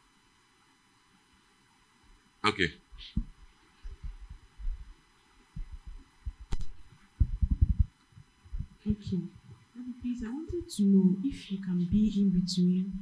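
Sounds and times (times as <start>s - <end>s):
microphone handling thuds: 2.9s - 10.8s
sharp click: 6.5s - 6.8s.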